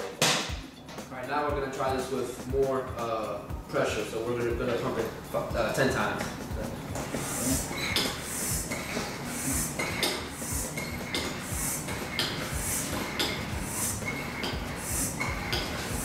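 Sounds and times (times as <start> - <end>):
air pump strokes hissing: 1.7 - 16.0.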